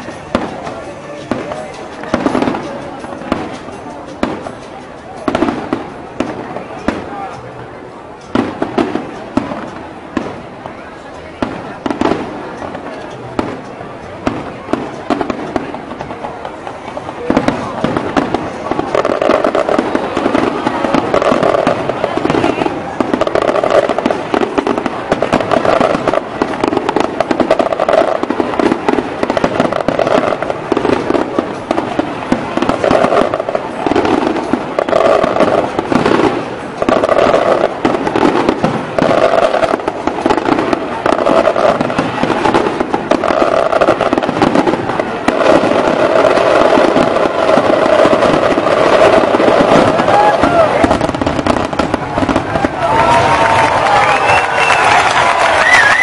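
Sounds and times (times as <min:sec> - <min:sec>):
fireworks bangs and crackling: 0:00.0 - 0:56.0.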